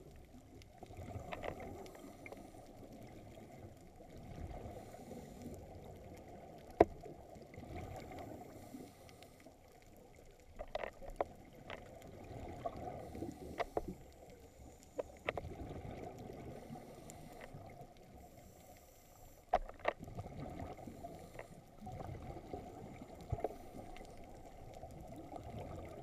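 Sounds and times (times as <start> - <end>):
muffled underwater rushing water: 0.0 - 26.0.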